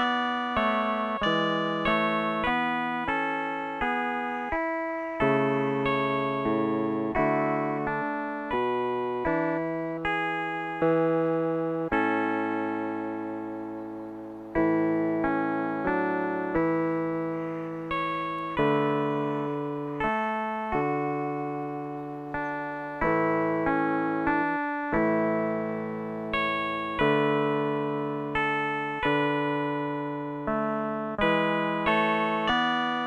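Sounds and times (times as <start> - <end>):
slow instrumental music with chords: 0.0 - 33.0.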